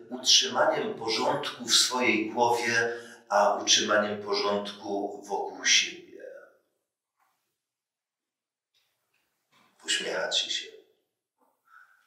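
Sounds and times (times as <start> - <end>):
man speaking: 0.0 - 6.4, 9.8 - 10.7.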